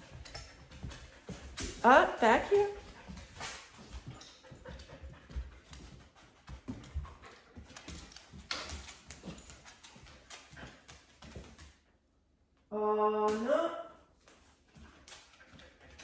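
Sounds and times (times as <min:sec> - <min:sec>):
dog toenails clicking on floor: 0:00.0 - 0:11.9, 0:14.2 - 0:16.0.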